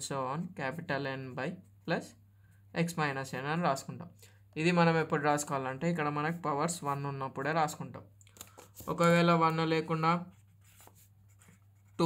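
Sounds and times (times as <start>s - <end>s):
pen scratching on paper: 9.9s - 12.0s.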